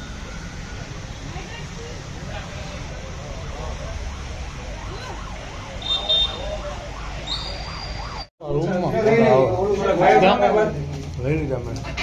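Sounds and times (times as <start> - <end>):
low outdoor rumble: 0.0 - 7.2
siren wailing: 2.1 - 8.3.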